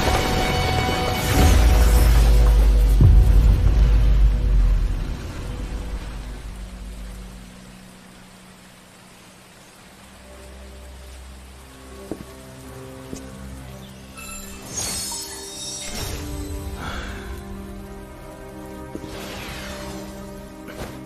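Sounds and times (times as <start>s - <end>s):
steady hiss like rain: 0.0s - 21.0s.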